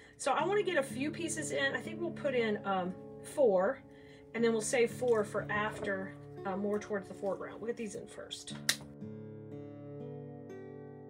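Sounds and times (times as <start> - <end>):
acoustic guitar picking: 4.4 - 11.0.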